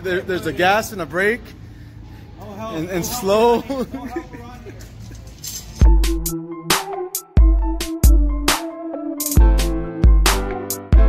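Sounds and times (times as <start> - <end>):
faint background hum: 0.0 - 5.5
man talking: 2.4 - 4.8
electronic music with deep bass: 5.8 - 11.0.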